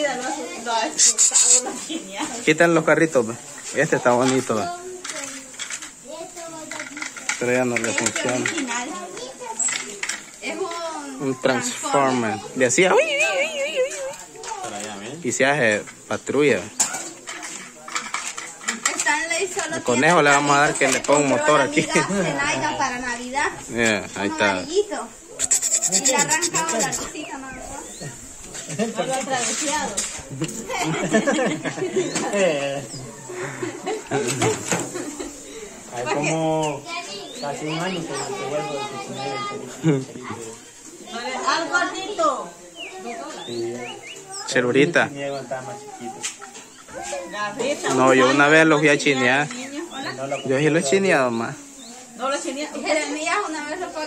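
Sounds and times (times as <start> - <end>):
faint voices: 0.0 - 2.5, 3.2 - 54.0.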